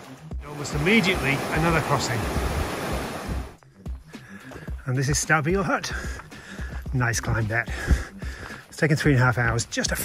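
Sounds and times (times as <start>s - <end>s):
stream rushing over boulders: 0.0s - 3.6s.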